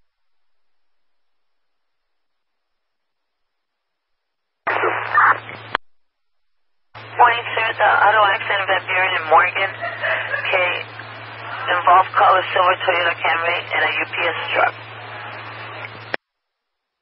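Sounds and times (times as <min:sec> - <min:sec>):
steady low hum: 0:00.0 - 0:16.2
person talking over radio: 0:04.7 - 0:05.6, 0:07.0 - 0:14.8
radio transmission: 0:04.7 - 0:05.8, 0:07.0 - 0:16.2
radio click: 0:04.7 - 0:05.9.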